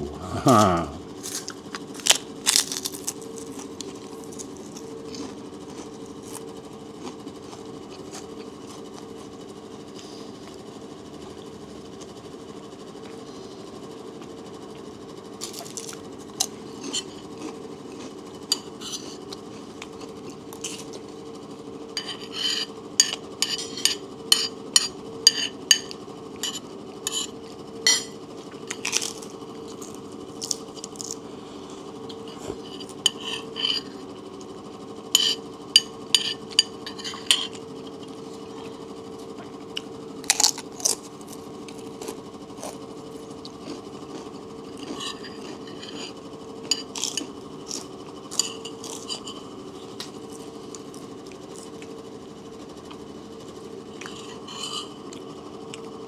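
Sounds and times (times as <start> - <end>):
cracker crunch: 0.4 - 9.1, 15.4 - 21.1, 28.5 - 31.3, 40.2 - 51.9
spoon scraping a plate: 16.7 - 17.3, 18.5 - 19.4, 22.0 - 28.2, 32.1 - 34.1, 35.2 - 37.6, 44.8 - 47.3, 48.3 - 49.5, 54.0 - 55.2.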